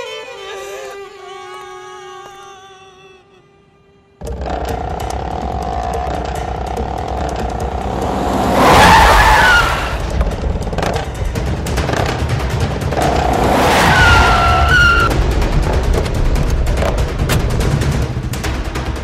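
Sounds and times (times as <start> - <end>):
background music: 0.0 - 19.0
vehicle engines rumbling: 4.2 - 17.6
tyre skid squeal: 7.8 - 10.2, 13.2 - 15.1.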